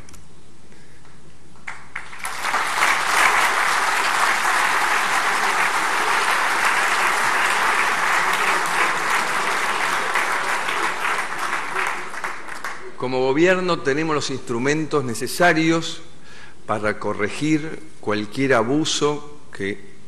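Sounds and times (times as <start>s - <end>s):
audience applauding: 1.6s - 13.0s.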